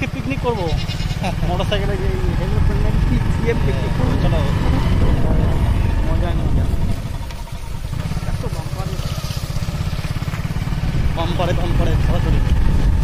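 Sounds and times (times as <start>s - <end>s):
motorcycle engine rumble: 0.0s - 13.0s
wind on microphone: 4.0s - 8.0s, 10.7s - 13.0s.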